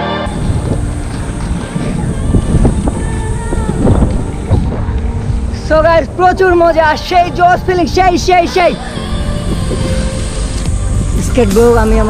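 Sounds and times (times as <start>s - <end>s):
skate wheels rolling on asphalt: 0.3s - 5.6s
wind on camera microphone: 0.3s - 12.0s.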